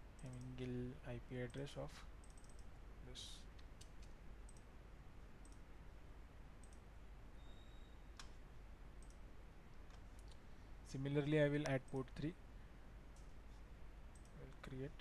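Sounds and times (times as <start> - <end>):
computer keyboard and mouse clicks: 0.2 - 0.6, 2.2 - 2.7, 3.6 - 4.7, 5.4 - 5.6, 6.6 - 6.8, 9.0 - 9.2, 14.1 - 14.8.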